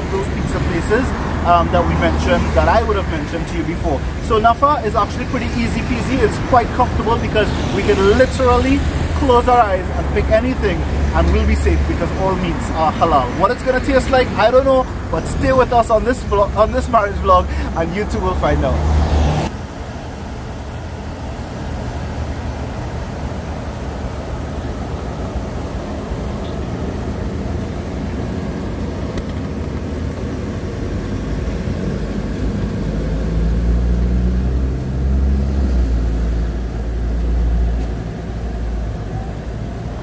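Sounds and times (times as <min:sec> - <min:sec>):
deep engine drone: 0:00.0 - 0:40.0
road traffic rumble: 0:00.0 - 0:40.0.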